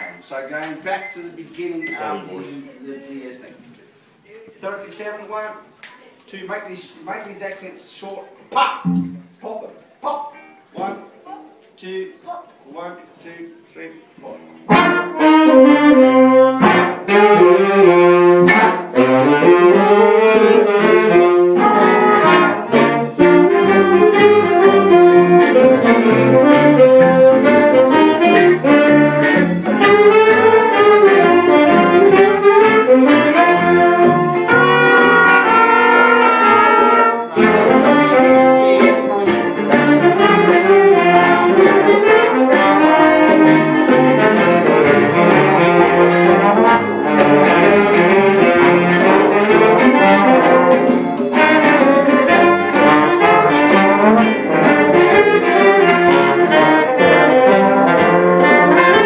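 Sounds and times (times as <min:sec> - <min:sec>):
big band playing jazz: 0:08.8 - 0:09.4, 0:14.6 - 0:59.0.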